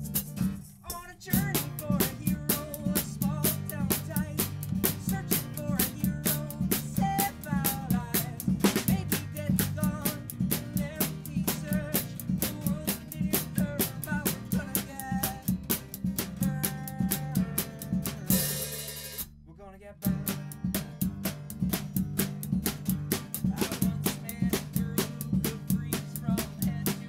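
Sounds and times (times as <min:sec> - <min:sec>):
live band playing upbeat song: 0:00.0 - 0:19.2, 0:20.3 - 0:27.0.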